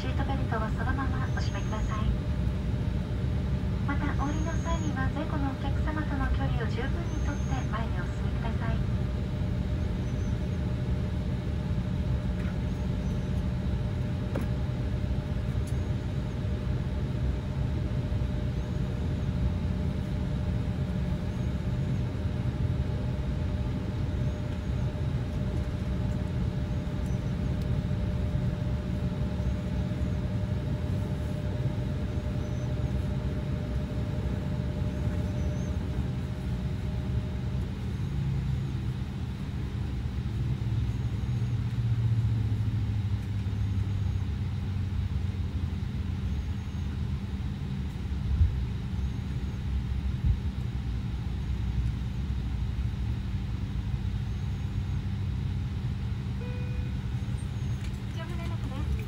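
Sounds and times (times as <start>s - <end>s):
faint steady hum: 0.0s - 59.0s
low mechanical rumble: 0.0s - 59.0s.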